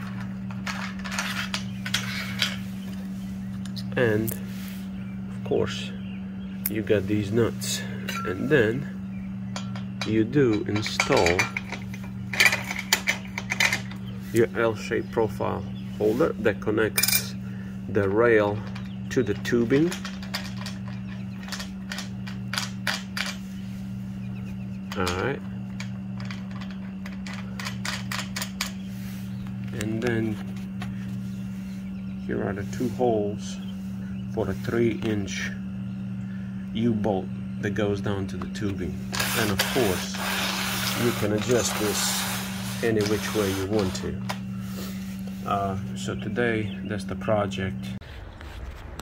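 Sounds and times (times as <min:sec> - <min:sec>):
bolt clicking and scraping in rail: 0:00.0 - 0:04.4, 0:09.6 - 0:14.9, 0:18.0 - 0:23.5, 0:24.8 - 0:30.9, 0:38.4 - 0:44.5
steady low hum: 0:00.0 - 0:49.0.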